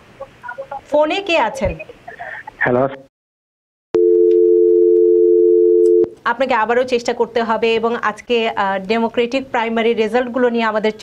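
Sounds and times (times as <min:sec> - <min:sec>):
telephone dial tone: 0:04.0 - 0:06.1.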